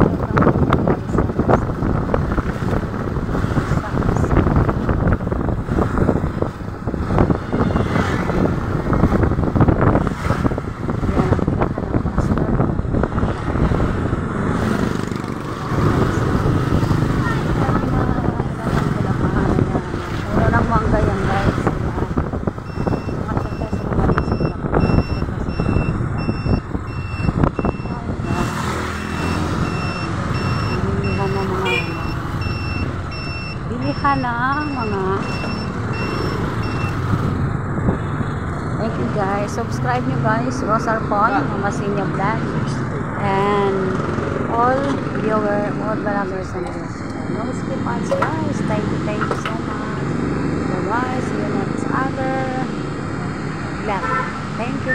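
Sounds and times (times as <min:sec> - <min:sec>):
vehicle engine and road rumble: 0:00.0 - 0:54.9.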